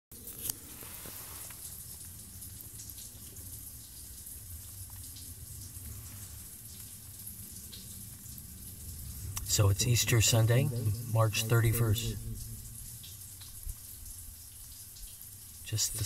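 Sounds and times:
water dripping echoing in pipe: 1.5s - 16.0s
low steady rumble: 8.2s - 13.8s.

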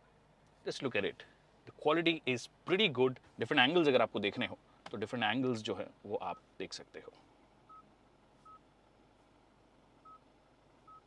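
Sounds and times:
faint touchscreen beeps: 7.7s - 8.6s, 10.0s - 11.0s.

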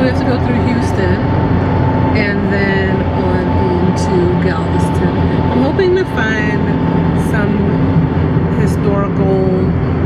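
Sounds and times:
woman's voice: 0.0s - 1.3s, 2.2s - 9.8s
car road and engine rumble: 0.0s - 10.0s.

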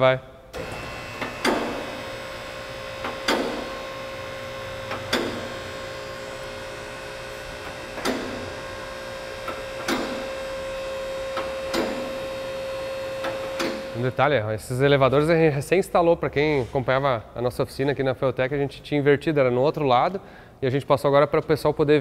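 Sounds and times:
car lift humming: 0.4s - 15.5s.

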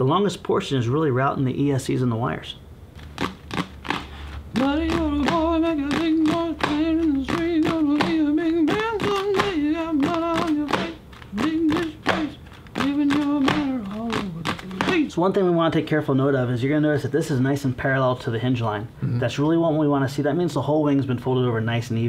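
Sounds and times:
sharp tapping beat: 3.0s - 15.2s
man singing wordless tune: 4.5s - 15.8s.

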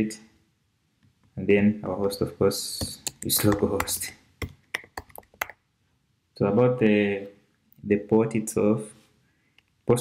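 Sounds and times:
keyboard key clicks: 2.8s - 5.6s.

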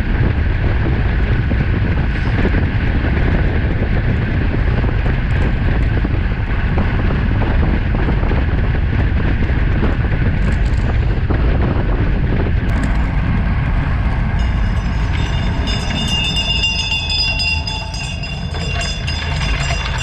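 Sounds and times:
wind and road rumble: 0.0s - 20.0s
bicycle freewheel ticking buzz: 13.7s - 20.0s.

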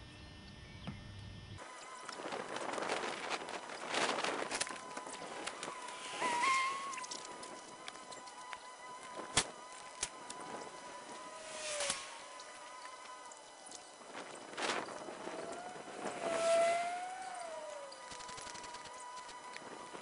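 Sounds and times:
wavering whistle: 3.7s - 20.0s.

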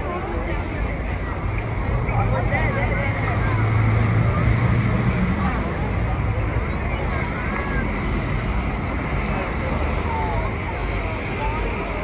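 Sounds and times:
crowd talking: 0.0s - 12.0s
passing cars rumbling: 0.0s - 12.0s.

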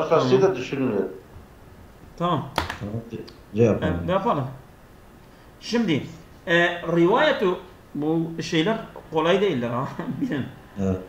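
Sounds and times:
man speaking: 2.2s - 4.6s, 5.6s - 11.0s.

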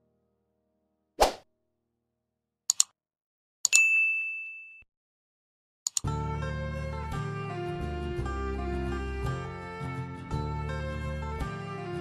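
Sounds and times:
mouse clicks: 2.7s - 2.9s
bell-like ding: 3.7s - 4.8s.

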